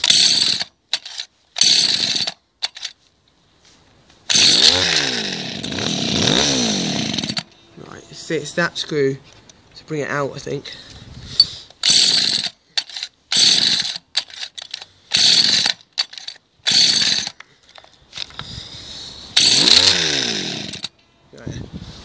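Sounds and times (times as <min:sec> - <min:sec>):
hedge cutter engine surging: 0:00.0 - 0:02.9, 0:04.3 - 0:08.8, 0:11.4 - 0:17.4, 0:19.1 - 0:20.9.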